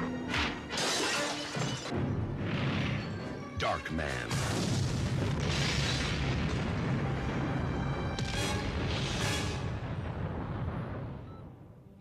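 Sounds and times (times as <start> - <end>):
movie trailer music: 0.0 - 12.0.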